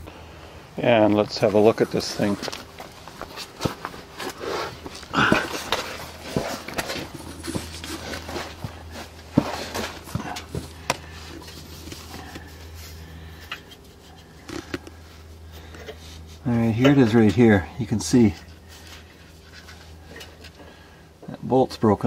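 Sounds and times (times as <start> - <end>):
handling and shuffling noises: 0.8 - 21.4.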